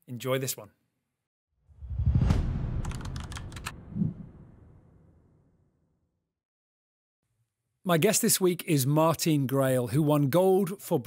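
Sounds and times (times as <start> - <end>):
low rumble: 1.7 - 5.3
low thump: 1.8 - 5.0
sharp typing-like clicks: 2.8 - 3.7.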